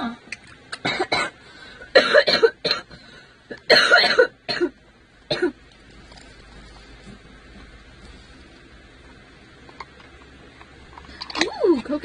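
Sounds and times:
person coughing: 0:00.8 - 0:02.9, 0:03.7 - 0:05.6.

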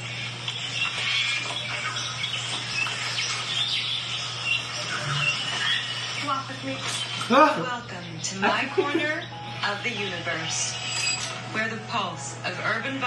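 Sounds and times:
birds chirping and singing: 0:00.0 - 0:13.0.

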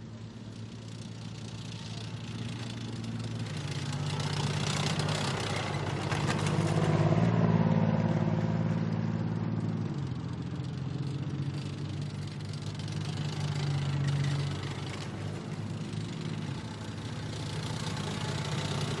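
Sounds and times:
armoured vehicle engines driving past: 0:00.0 - 0:19.0.

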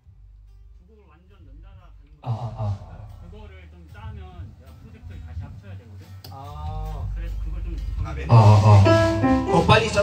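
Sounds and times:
indistinct talking: 0:01.6 - 0:06.0, 0:07.0 - 0:10.0
low amplified instrument notes: 0:06.8 - 0:10.0.

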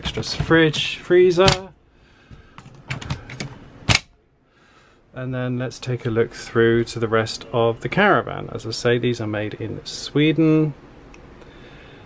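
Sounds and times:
fridge door clicks: 0:00.0 - 0:01.7.

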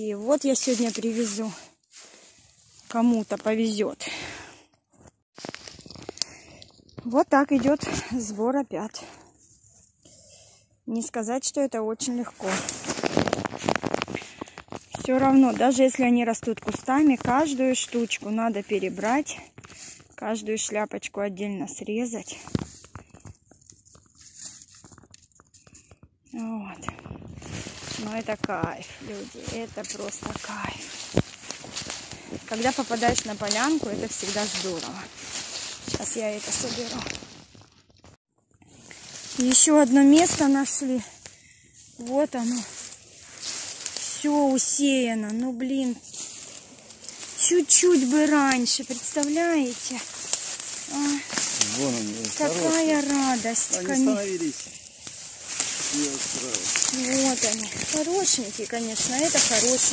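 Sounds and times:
woman speaking: 0:00.0 - 0:01.6, 0:02.9 - 0:04.4, 0:07.0 - 0:09.2, 0:10.9 - 0:12.7, 0:15.0 - 0:19.4, 0:20.2 - 0:22.5, 0:26.4 - 0:27.0, 0:27.9 - 0:30.9, 0:32.4 - 0:35.1, 0:35.9 - 0:37.1, 0:39.4 - 0:41.1, 0:42.0 - 0:42.7, 0:44.0 - 0:46.0, 0:47.4 - 0:50.1, 0:50.9 - 0:51.3, 0:52.3 - 0:54.4, 0:56.9 - 0:59.9
footsteps on leaf litter and twigs: 0:00.3 - 0:04.3, 0:05.4 - 0:08.2, 0:12.1 - 0:20.1, 0:22.3 - 0:59.9
twigs snapping: 0:05.4 - 0:08.0, 0:12.4 - 0:20.1, 0:22.4 - 0:38.2, 0:38.8 - 0:59.9.

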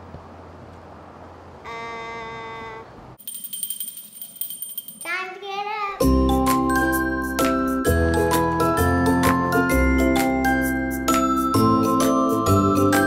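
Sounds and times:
high ringing chime with ticks: 0:03.2 - 0:05.2.

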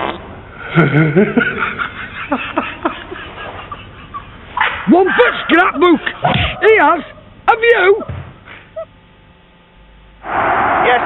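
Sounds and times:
man laughing uncontrollably: 0:00.6 - 0:07.3.

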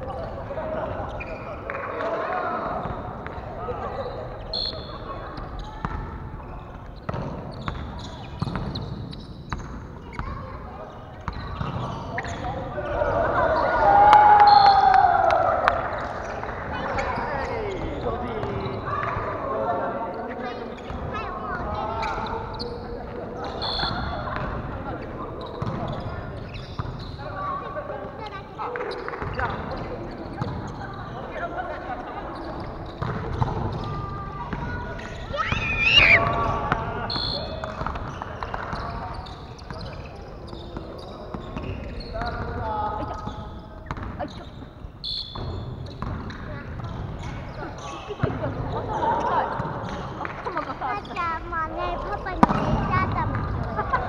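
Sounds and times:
players calling out and chatting: 0:00.0 - 0:54.0.

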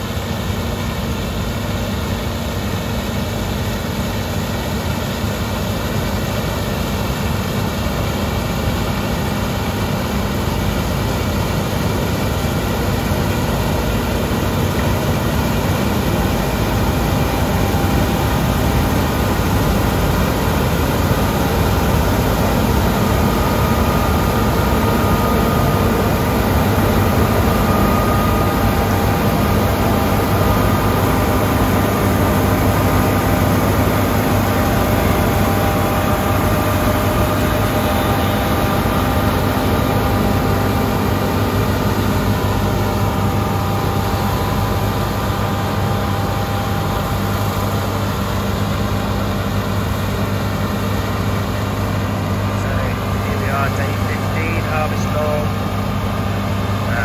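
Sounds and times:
combine harvester humming: 0:00.0 - 0:57.0
faint steady whine: 0:00.0 - 0:57.0.

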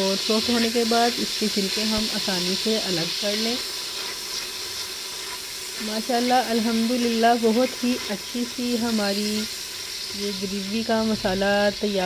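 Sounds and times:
food sizzling in oil: 0:00.0 - 0:12.0
spatula stirring in pot: 0:03.6 - 0:12.0.

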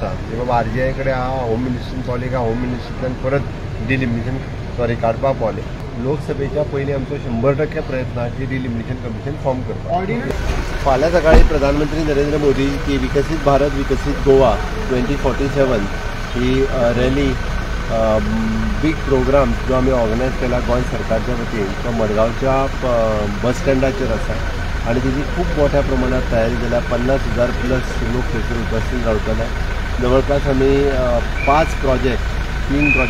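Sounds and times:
car idling hum: 0:00.0 - 0:33.0
man talking: 0:00.0 - 0:33.0.

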